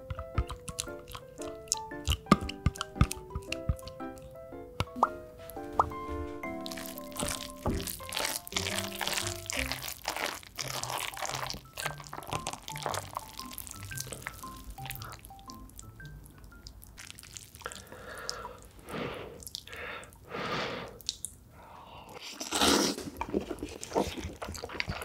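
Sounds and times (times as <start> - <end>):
light background music: 0.0 - 17.0
wet squishing of noodles: 0.1 - 3.9, 6.6 - 15.9, 16.6 - 20.2, 20.9 - 21.5, 22.1 - 25.0.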